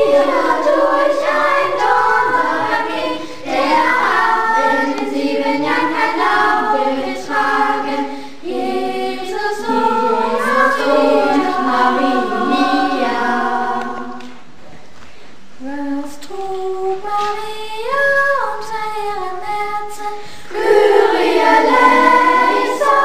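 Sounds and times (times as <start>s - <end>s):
choir singing held notes: 0.0s - 14.6s, 20.5s - 23.0s.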